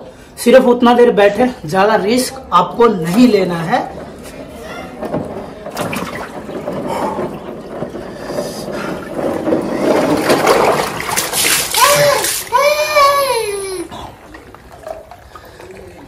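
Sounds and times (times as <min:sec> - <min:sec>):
ice water sloshing and splashing: 0:05.3 - 0:16.0
man crying out: 0:11.8 - 0:13.9.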